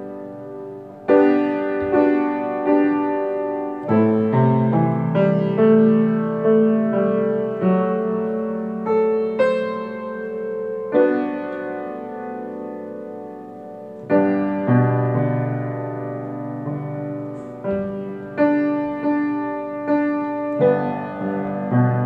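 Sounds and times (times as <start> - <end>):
slow soft piano chords: 0.0 - 22.0.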